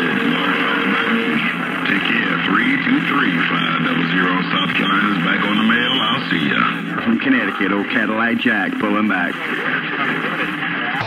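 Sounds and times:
radio static from distant stations: 0.0s - 11.0s
wavering voice-like radio sounds: 0.0s - 11.0s.

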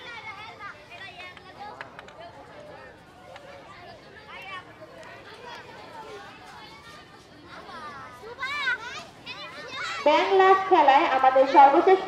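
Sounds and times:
children's voices in a crowd: 0.0s - 12.0s.

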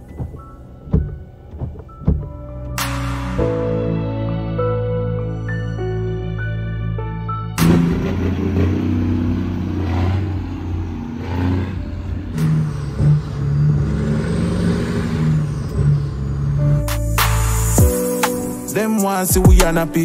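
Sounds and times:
music: 0.0s - 13.9s, 15.8s - 20.0s
diesel truck engine accelerating: 0.0s - 20.0s.

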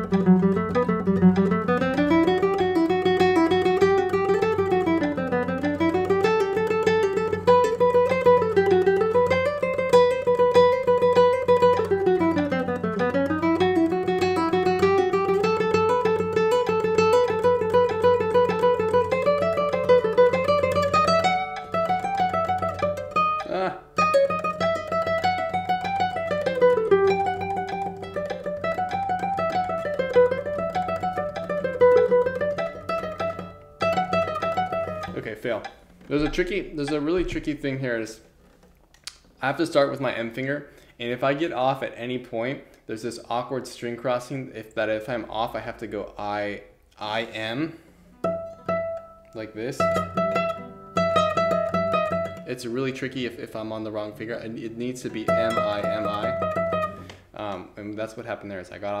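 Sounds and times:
classical guitar scale runs: 0.0s - 37.6s, 48.2s - 52.5s, 54.0s - 57.2s.

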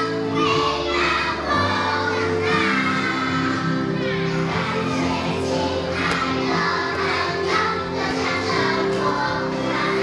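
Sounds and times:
children singing together: 0.0s - 10.0s
music accompaniment: 0.0s - 10.0s.

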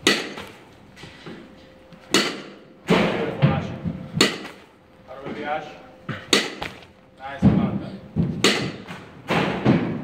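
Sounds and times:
bat striking ball: 0.0s - 0.6s, 2.1s - 3.1s, 4.2s - 4.7s, 6.1s - 7.0s, 8.2s - 10.0s
knocks and thuds: 6.1s - 10.0s.

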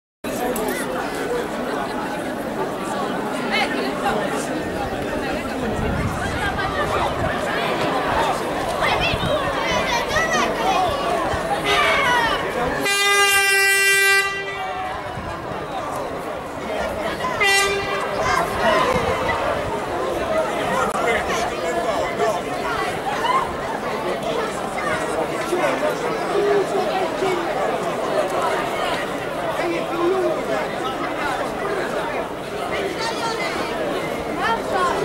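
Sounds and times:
crowd chatter: 0.2s - 35.0s
horn blast: 12.8s - 15.2s, 17.3s - 18.9s.

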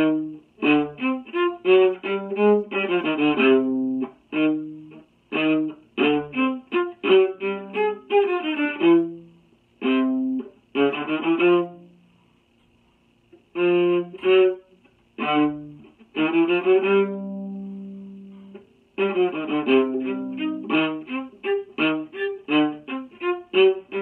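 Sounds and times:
bowed viola playing tango: 0.0s - 12.0s, 13.5s - 24.0s.

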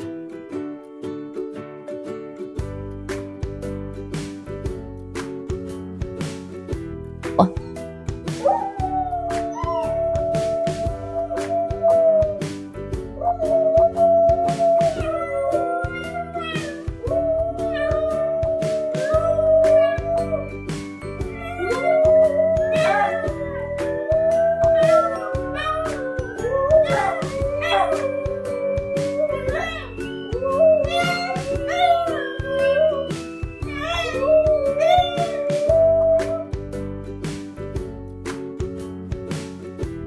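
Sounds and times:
background music with steady beat: 0.0s - 40.0s
dog howling: 8.4s - 12.5s, 13.2s - 20.6s, 21.3s - 36.4s.

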